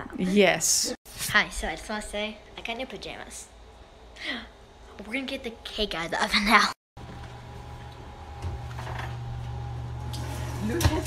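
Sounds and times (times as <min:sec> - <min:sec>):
oven humming: 0:07.0 - 0:11.0.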